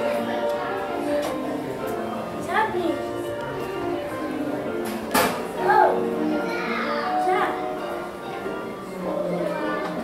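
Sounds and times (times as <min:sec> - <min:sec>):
background music in a shop: 0:00.0 - 0:10.0
children's voices chattering: 0:00.0 - 0:10.0
child's high call: 0:05.6 - 0:07.6.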